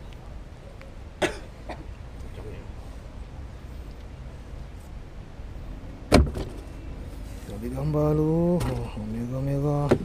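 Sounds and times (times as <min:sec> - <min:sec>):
person coughing: 0:01.2 - 0:01.8.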